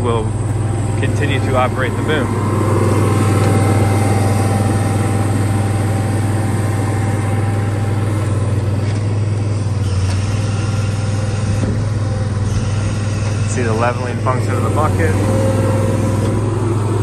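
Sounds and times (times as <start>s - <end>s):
diesel engine idling: 0.0s - 17.0s
generator running: 0.0s - 17.0s.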